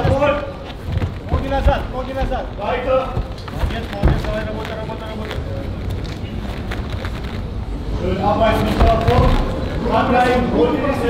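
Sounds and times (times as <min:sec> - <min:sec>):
heavy thud: 0:00.0 - 0:05.0, 0:08.6 - 0:09.7.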